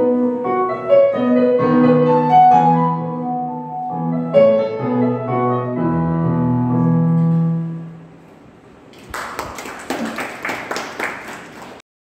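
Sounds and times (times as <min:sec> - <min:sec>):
audience clapping: 0:08.9 - 0:11.8.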